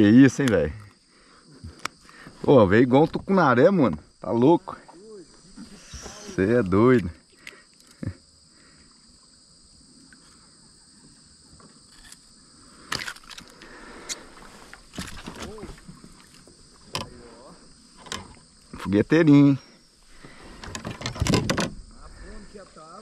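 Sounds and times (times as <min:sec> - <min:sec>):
high insect drone: 0:00.0 - 0:23.0.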